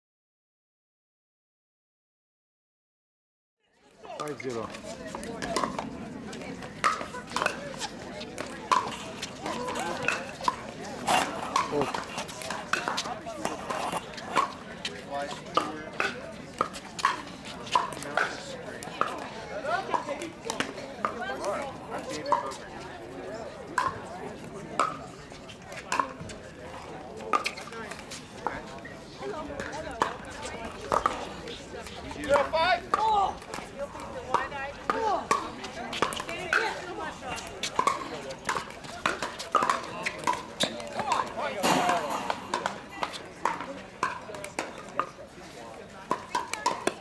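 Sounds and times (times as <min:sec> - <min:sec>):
paddles hitting plastic ball: 0:37.7 - 0:45.1.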